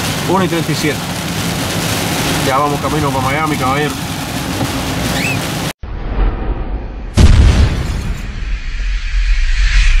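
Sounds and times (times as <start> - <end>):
boom with low rumble: 5.8 - 10.0.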